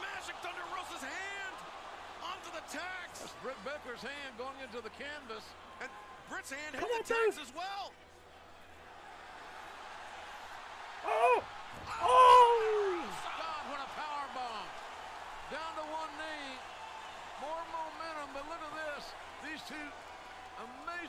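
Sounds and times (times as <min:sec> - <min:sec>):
arena crowd noise: 0:00.0 - 0:21.0
high-pitched yells: 0:11.1 - 0:13.2.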